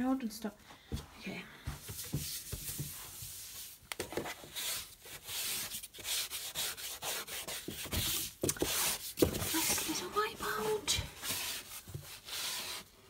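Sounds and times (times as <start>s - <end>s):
cleaning wipe scrubbing a shelf: 1.6s - 13.0s.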